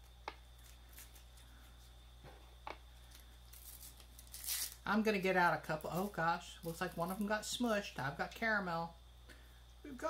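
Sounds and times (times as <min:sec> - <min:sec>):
low steady hum: 0:00.0 - 0:10.0
paper candy wrapper rustling: 0:03.0 - 0:04.9.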